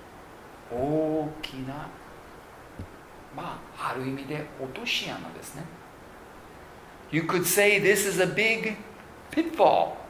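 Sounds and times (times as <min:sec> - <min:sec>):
man speaking: 0:00.7 - 0:02.0, 0:03.3 - 0:05.8, 0:07.1 - 0:10.0
soft low thump: 0:02.8 - 0:03.0.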